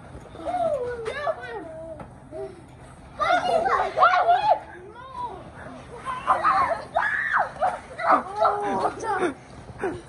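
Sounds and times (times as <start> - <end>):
children shrieking and shouting: 3.2 - 9.4.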